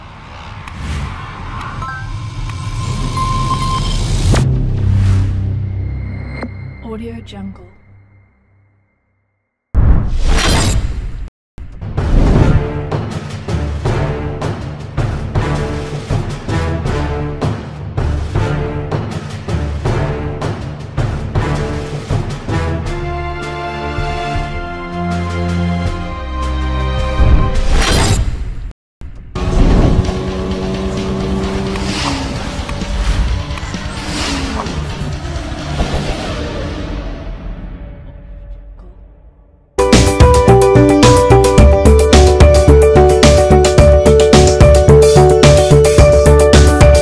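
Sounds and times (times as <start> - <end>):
whoosh: 0.0 - 6.8.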